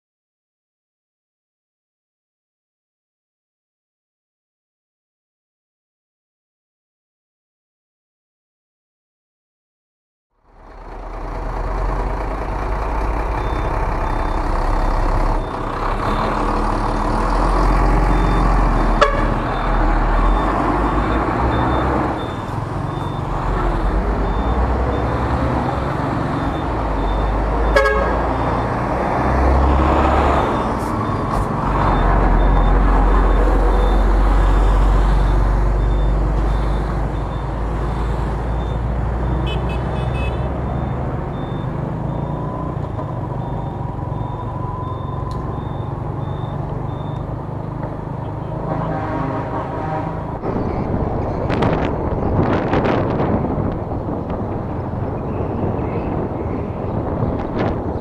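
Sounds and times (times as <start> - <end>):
road traffic engines: 10.3 - 58.0
heavy truck passing: 10.4 - 58.0
short horn beeps: 18.9 - 19.4, 27.7 - 28.3, 39.3 - 40.5.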